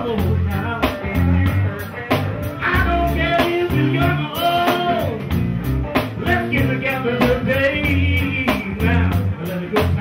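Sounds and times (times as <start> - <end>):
bass and drums: 0.0 - 10.0
electric guitar lead: 0.0 - 10.0.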